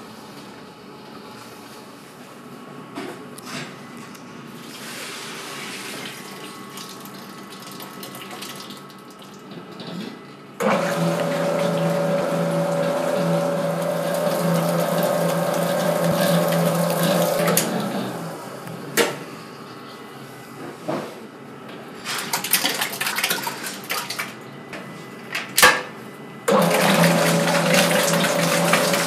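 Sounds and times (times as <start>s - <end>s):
mixer motor whirring: 10.6s - 18.8s, 26.5s - 29.0s.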